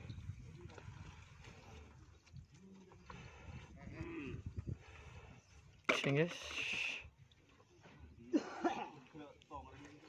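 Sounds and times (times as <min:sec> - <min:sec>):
person coughing: 0:08.3 - 0:09.0.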